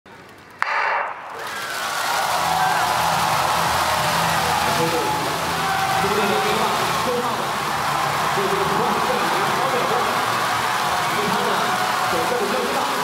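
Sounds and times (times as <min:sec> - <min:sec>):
crowd cheering and shouting: 0:01.0 - 0:13.0.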